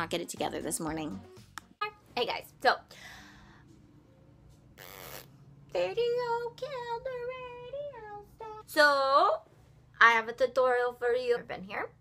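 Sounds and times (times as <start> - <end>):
faint low hum: 1.8 - 12.0.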